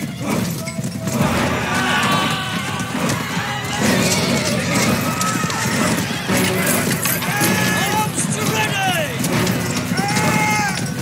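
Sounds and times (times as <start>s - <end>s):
horse hoofbeats on dirt: 0.0s - 11.0s
music: 0.2s - 11.0s.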